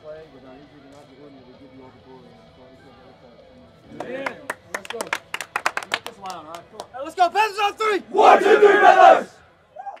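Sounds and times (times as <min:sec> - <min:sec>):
boys shouting in unison: 0:08.1 - 0:09.3.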